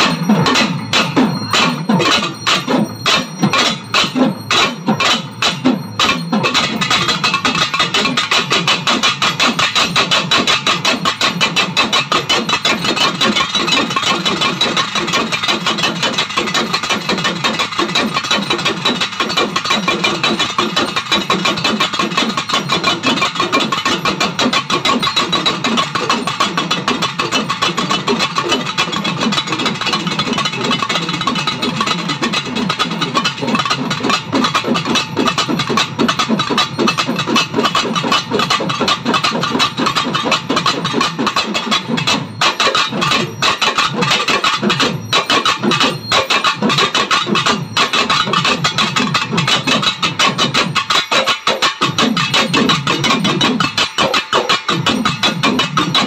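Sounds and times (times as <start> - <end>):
drums beaten with sticks: 0.0 - 56.0.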